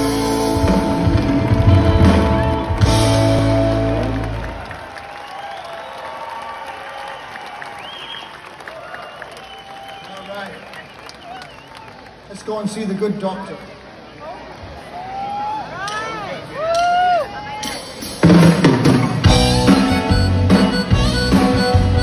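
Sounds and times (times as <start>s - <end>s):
live rock band: 0.0s - 4.8s, 17.6s - 22.0s
crowd cheering and applauding: 0.0s - 12.5s, 18.6s - 22.0s.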